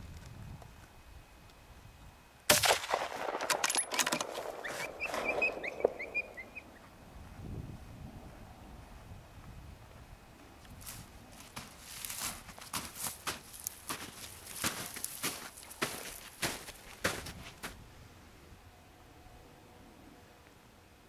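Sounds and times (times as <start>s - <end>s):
rifle metallic clicks and rattles: 2.9s - 6.0s
footsteps crunching through snow: 4.2s - 6.4s, 10.8s - 17.8s.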